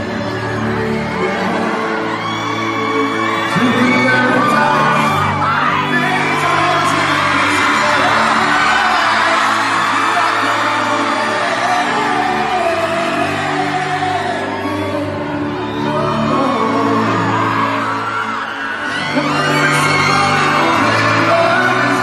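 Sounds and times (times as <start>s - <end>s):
crowd cheering and screaming: 0.0s - 22.0s
live pop-rock music with singer: 0.0s - 22.0s.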